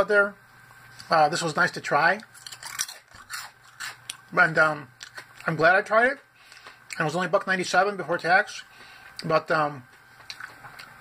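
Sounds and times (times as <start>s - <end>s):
chips being chewed: 2.2s - 4.3s, 10.2s - 11.0s.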